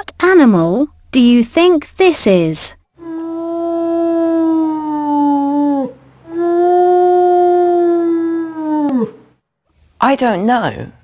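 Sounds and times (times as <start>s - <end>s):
wolf howling: 3.0s - 9.3s.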